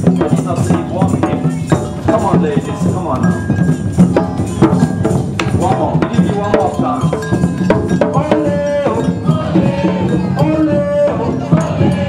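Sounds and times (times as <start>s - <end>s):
hand drumming: 0.0s - 12.0s
melody over drums: 0.0s - 12.0s.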